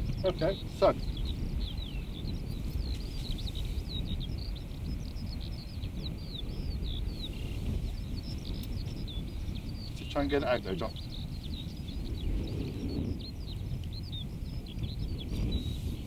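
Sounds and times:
songbird chirping: 0.0 - 16.0
wind buffeting microphone: 0.0 - 16.0.

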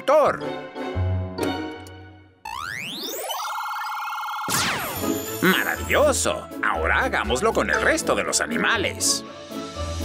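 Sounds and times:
music: 0.0 - 2.4, 4.6 - 10.0.

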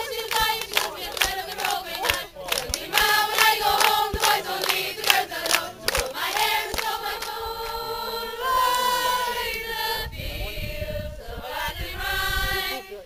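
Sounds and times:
hand claps: 0.0 - 7.8
group singing unaccompanied: 0.0 - 13.0.

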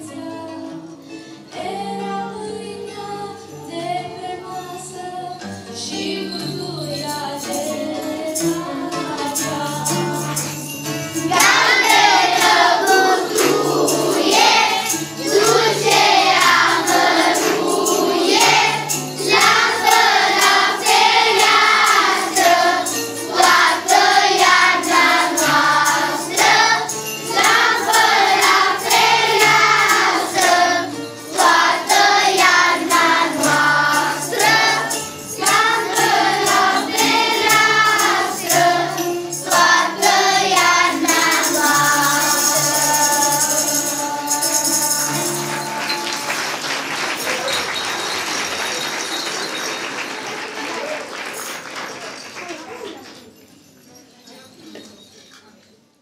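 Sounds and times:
choir singing a carol: 1.5 - 47.1.

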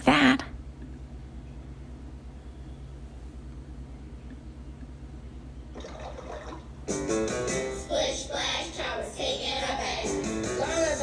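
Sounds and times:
low steady hum: 0.0 - 11.0
music with singing: 6.9 - 11.0.

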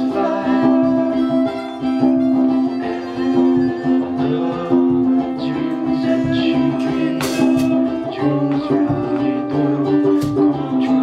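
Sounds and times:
harmonica: 0.0 - 11.0
ukulele strumming: 0.0 - 11.0.

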